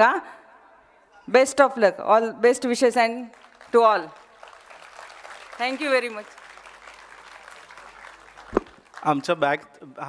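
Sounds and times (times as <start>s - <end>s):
faint audience applause: 3.3s - 9.6s
sharp thump: 8.5s - 8.7s.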